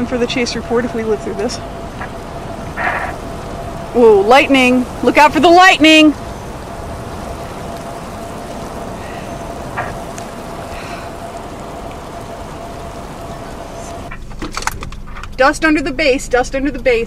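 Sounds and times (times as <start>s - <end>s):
faint steady hum: 0.0s - 17.0s
rain: 0.0s - 17.0s
wind: 0.0s - 17.0s.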